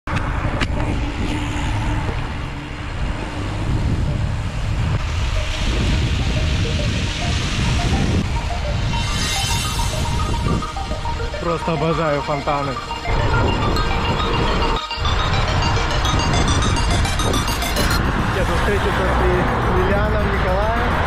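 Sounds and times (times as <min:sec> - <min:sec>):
faint simple melody: 0:03.5 - 0:18.2.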